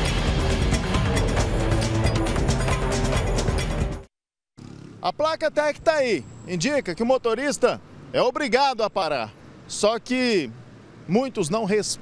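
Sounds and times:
news theme music: 0.0s - 4.1s
faint street traffic: 4.6s - 12.0s.

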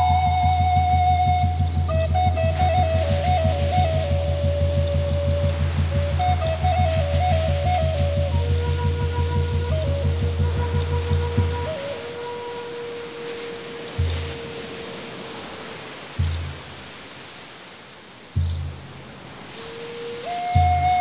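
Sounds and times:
flute melody: 0.0s - 16.9s, 18.4s - 21.0s.

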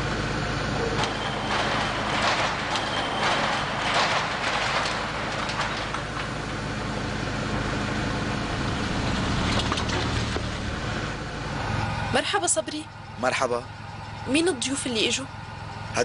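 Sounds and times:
car engine idling: 0.0s - 16.0s
iron gate scraping and clanking: 0.7s - 7.6s, 8.5s - 10.8s.

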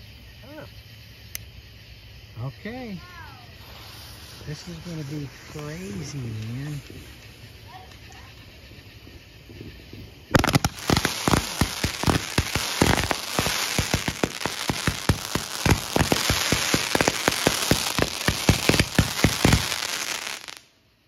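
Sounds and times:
firework stars crackling: 2.6s - 20.8s
firework launch bangs: 9.4s - 20.6s.

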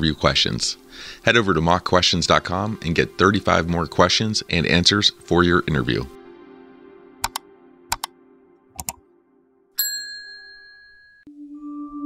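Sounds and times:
mouse double clicks: 7.2s - 8.1s, 8.8s - 9.0s.

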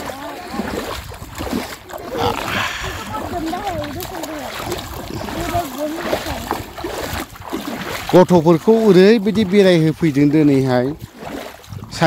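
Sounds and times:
wind rumbling on microphone: 0.4s - 8.3s, 11.0s - 12.0s
children's voices: 2.0s - 6.5s.

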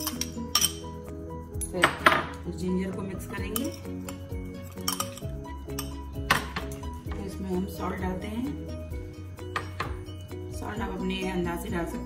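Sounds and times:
spoon clinking on glass bowl: 0.0s - 1.0s, 3.4s - 6.1s
background music: 0.0s - 12.0s.

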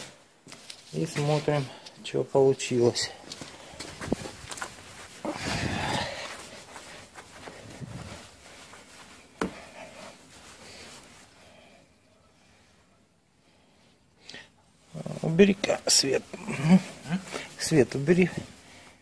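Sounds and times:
cloth rubbing on car paint: 3.5s - 11.7s.

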